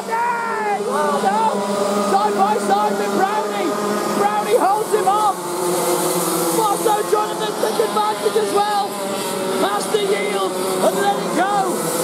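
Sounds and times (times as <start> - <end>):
kart engines racing: 0.0 - 12.0.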